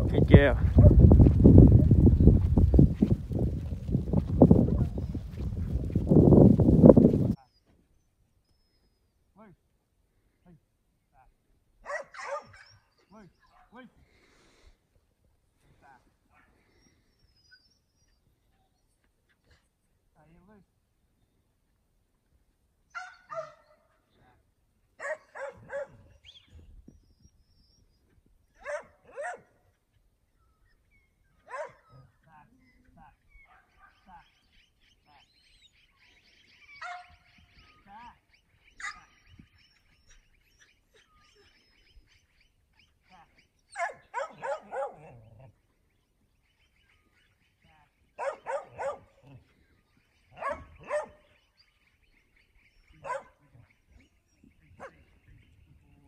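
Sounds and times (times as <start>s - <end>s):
dog barking: 11.8s - 12.8s, 23.0s - 23.8s, 25.0s - 26.1s, 28.6s - 29.5s, 31.4s - 31.9s, 33.5s - 34.0s, 36.8s - 37.2s, 43.8s - 45.2s, 48.2s - 49.2s, 50.4s - 51.2s, 53.0s - 53.4s, 54.8s - 55.0s.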